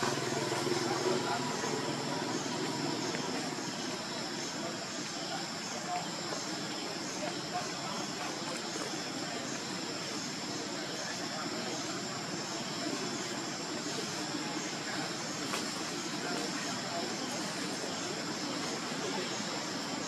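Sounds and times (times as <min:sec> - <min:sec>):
continuous outdoor rush: 0:00.0 - 0:20.0
high insect drone: 0:00.0 - 0:20.0.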